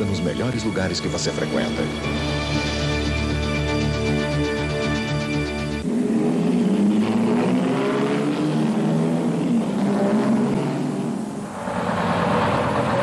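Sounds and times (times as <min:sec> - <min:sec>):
cars driving past: 0:05.6 - 0:13.0.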